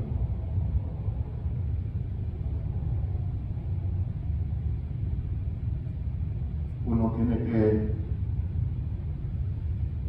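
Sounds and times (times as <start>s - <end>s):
low background rumble: 0.0s - 10.0s.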